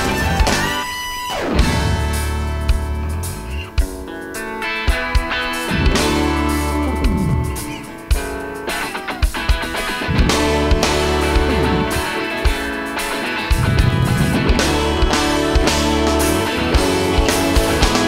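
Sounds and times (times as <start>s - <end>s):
electric guitar: 0.0s - 18.0s
live rock band playing: 0.0s - 18.0s
drum hits: 10.0s - 12.8s, 13.4s - 18.0s.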